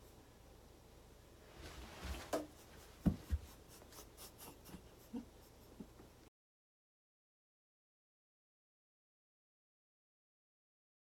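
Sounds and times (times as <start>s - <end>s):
rustling and knocking: 1.6s - 3.9s.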